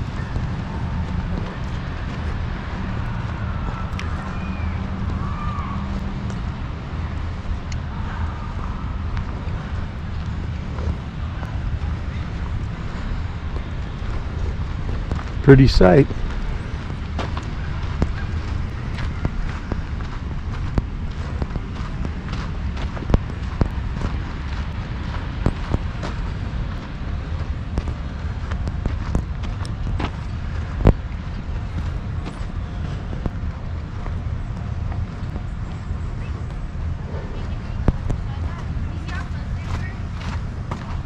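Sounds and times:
wind rumble on microphone: 0.0 - 41.0.

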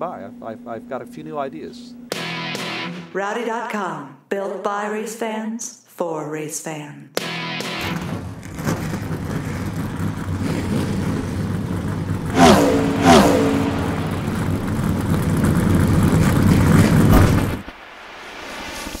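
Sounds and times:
race car engine drone: 8.0 - 17.7
race cars passing by: 8.6 - 17.6.

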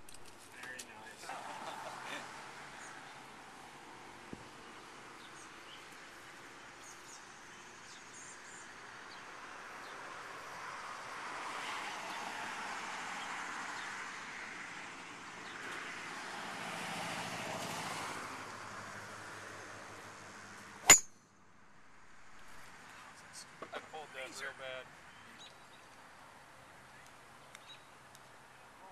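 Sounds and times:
traffic passing on road: 0.0 - 28.9
golf driver striking ball: 20.8 - 21.1.

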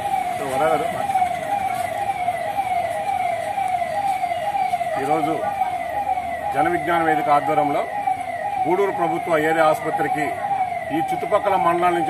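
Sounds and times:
electronic siren sweeping: 0.0 - 12.0.

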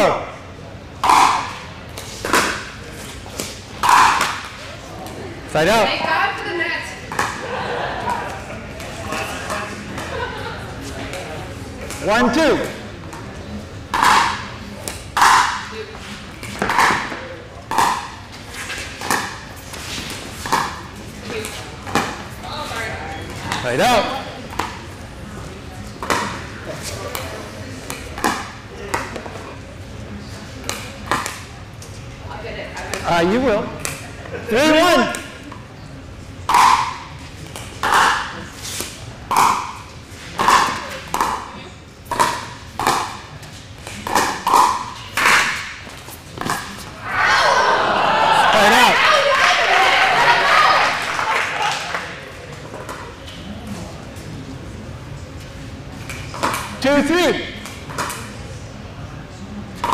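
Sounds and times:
crowd noise: 0.0 - 59.9
paddles hitting plastic ball: 1.0 - 5.2, 13.9 - 15.7, 16.4 - 18.2, 20.1 - 22.3, 27.0 - 29.4, 30.6 - 31.5, 36.5 - 46.8.

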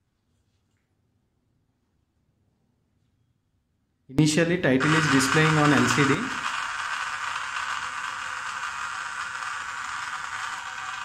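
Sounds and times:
gear motor humming: 4.8 - 11.0.

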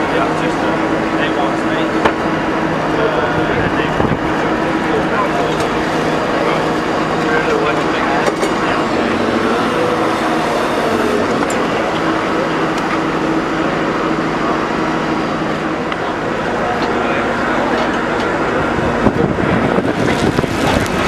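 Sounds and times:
excavator diesel engine running: 0.0 - 21.0
people talking: 0.0 - 21.0.

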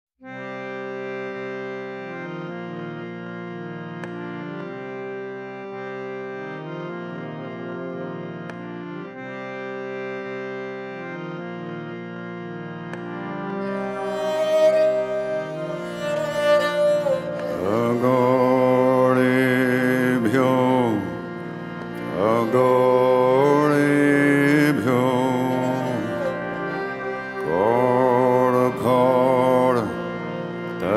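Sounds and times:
keyboard drone chord: 0.2 - 30.9
devotional chanting: 13.6 - 30.9.

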